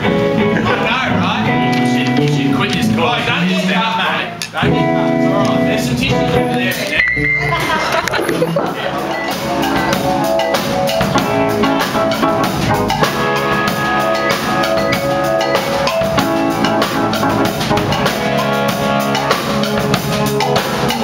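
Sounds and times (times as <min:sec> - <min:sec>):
drum kit beat: 0:00.0 - 0:21.0
electric guitars: 0:00.0 - 0:21.0
keyboard: 0:00.0 - 0:21.0.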